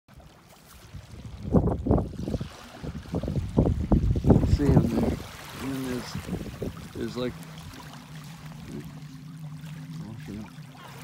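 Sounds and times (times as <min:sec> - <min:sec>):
small waves washing over sand: 0:00.1 - 0:11.0
wind gusting on microphone: 0:00.8 - 0:09.0.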